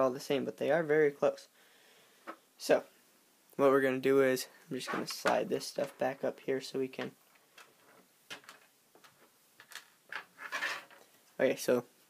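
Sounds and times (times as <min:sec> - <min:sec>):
small parts sliding on a tabletop: 0:10.1 - 0:11.1.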